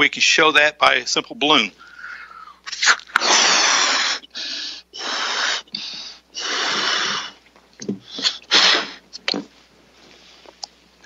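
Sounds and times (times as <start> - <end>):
person breathing in: 1.8 - 2.7, 3.3 - 7.4
puffs of breath into balloon: 1.8 - 7.4, 8.0 - 9.0.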